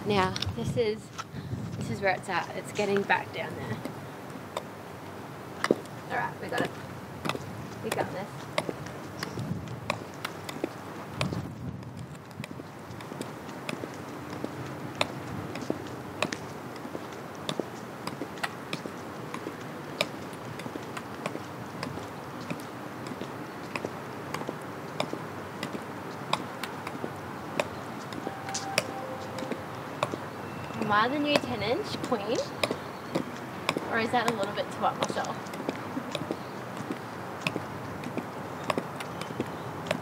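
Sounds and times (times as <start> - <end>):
heel clicks on concrete: 6.6 - 27.0.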